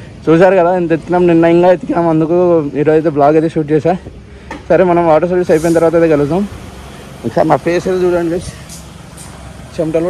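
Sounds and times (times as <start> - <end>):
man speaking: 0.2 - 6.6, 7.2 - 8.8, 9.7 - 10.0.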